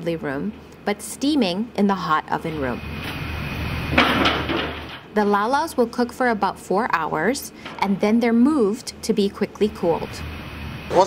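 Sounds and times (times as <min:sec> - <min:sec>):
steady low hum and hiss: 0:00.0 - 0:11.0
wheeled steel rack clattering: 0:03.9 - 0:05.1.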